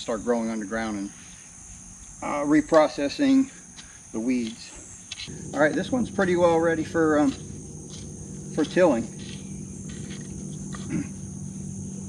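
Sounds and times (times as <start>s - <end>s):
insects droning: 0.0s - 12.0s
low grunt: 10.7s - 11.3s.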